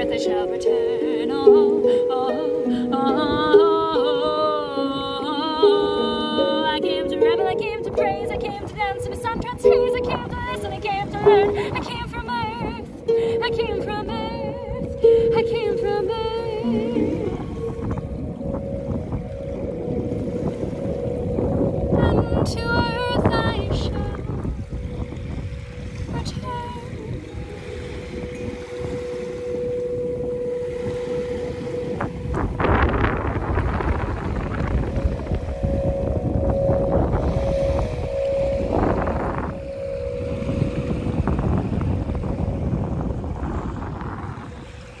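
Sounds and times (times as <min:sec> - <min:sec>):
small waves washing ashore: 0:00.0 - 0:45.0
wind buffeting microphone: 0:05.5 - 0:45.0
steady held note: 0:14.7 - 0:45.0.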